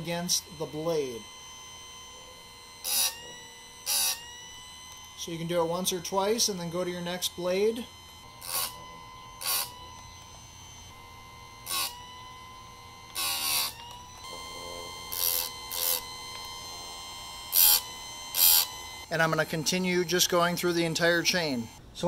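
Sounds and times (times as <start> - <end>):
grinding wheel whine: 0.0 - 22.0
wheel rasping on chain teeth: 8.3 - 10.3, 11.6 - 12.1, 13.1 - 16.8, 17.4 - 21.8.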